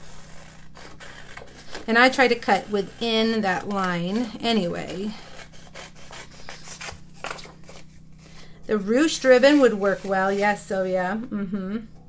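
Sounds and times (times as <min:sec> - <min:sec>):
scissors snipping paper: 0:00.1 - 0:07.9
paper rustling: 0:06.1 - 0:08.6.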